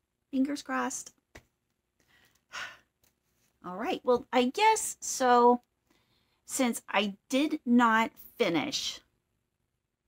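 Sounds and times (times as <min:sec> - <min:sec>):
woman sighing: 0:02.5 - 0:02.9.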